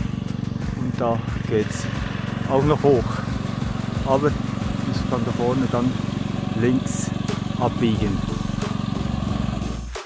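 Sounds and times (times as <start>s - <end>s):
engine running with low hum: 0.0s - 10.0s.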